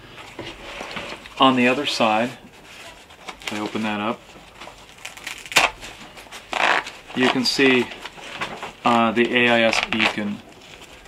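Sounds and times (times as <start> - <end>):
fabric handling: 0.5 - 11.0.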